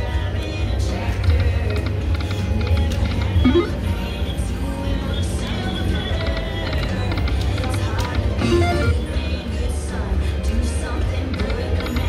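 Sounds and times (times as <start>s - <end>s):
slot machine electronic music: 3.3s - 4.1s, 8.4s - 9.0s
slot machine chimes: 3.4s - 3.8s.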